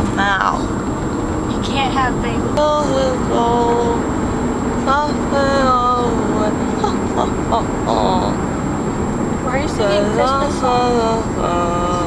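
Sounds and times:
car road rumble: 0:00.0 - 0:12.0
person murmuring: 0:02.4 - 0:04.0, 0:04.9 - 0:08.4, 0:09.6 - 0:12.0.

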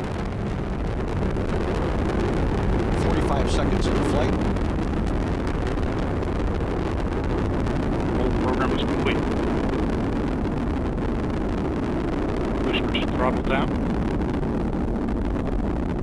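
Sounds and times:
rocket engine roar: 0:00.0 - 0:16.0.

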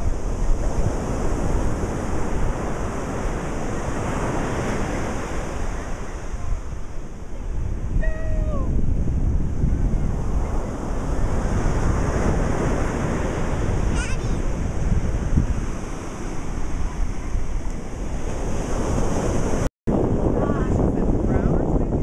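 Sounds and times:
ocean surf rushing: 0:00.0 - 0:22.0
wind buffeting microphone: 0:00.0 - 0:22.0.

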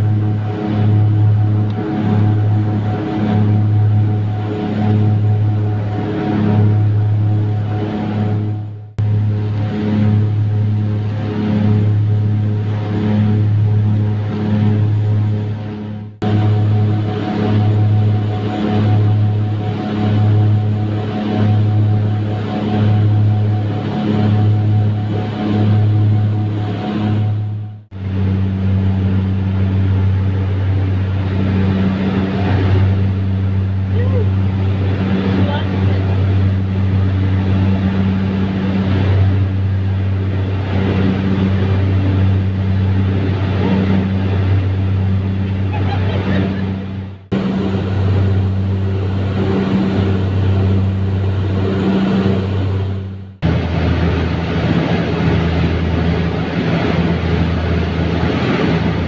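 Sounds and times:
turboprop engines droning: 0:00.0 - 0:59.0.

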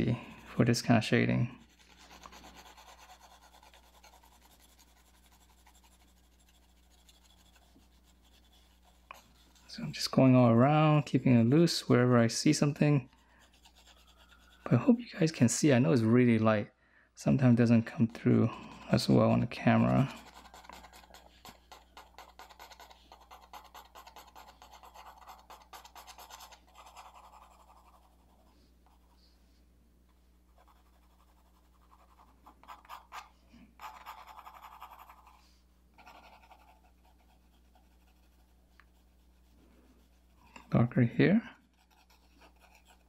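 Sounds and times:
pencil scratching on paper: 0:01.5 - 0:10.1, 0:11.2 - 0:14.8, 0:18.5 - 0:29.2, 0:30.5 - 0:40.4, 0:41.7 - 0:43.0.

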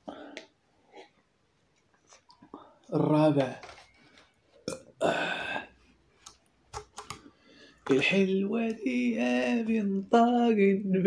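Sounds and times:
man burping: 0:04.6 - 0:05.8.

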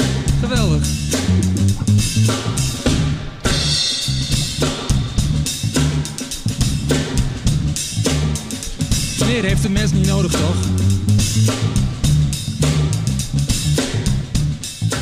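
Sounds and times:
live funk band playing: 0:00.0 - 0:15.0.

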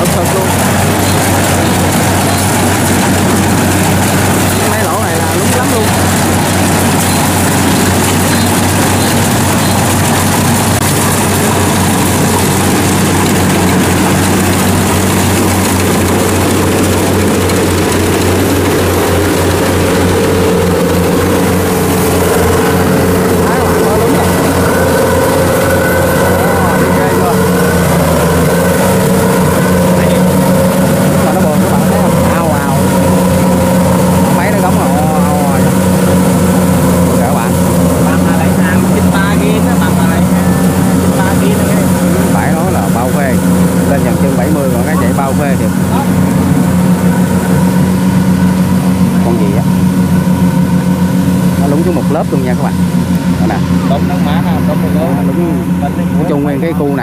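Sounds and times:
combine harvester engine droning: 0:00.0 - 0:57.0.

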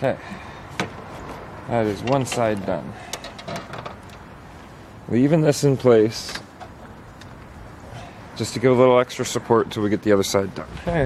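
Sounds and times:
handling clicks and knocks: 0:02.0 - 0:04.3.

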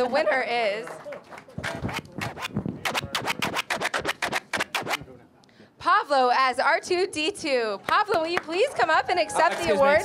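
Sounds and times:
rapid percussive hits: 0:01.6 - 0:05.1.

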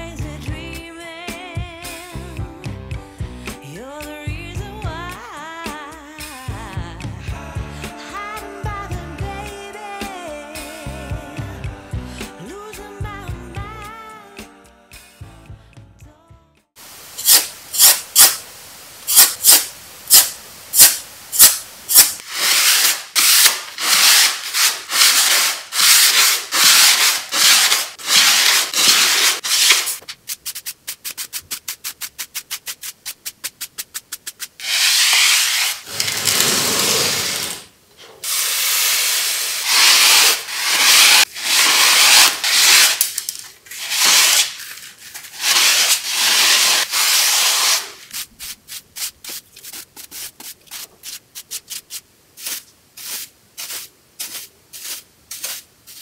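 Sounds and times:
hand rubbing plastic case: 0:25.9 - 0:37.3.

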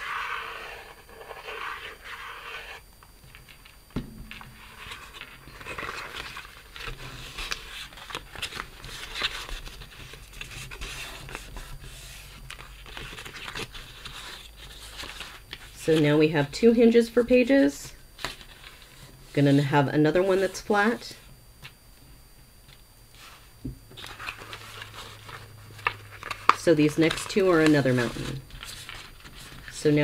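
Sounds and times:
glue bottle nozzle drawing on paper: 0:00.0 - 0:02.8
paper rubbing and scraping: 0:00.0 - 0:02.8, 0:04.5 - 0:15.4, 0:24.0 - 0:30.0.

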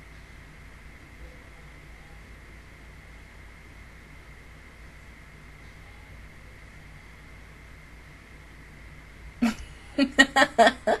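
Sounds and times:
low background hum: 0:00.0 - 0:11.0
woman laughing: 0:09.4 - 0:11.0.

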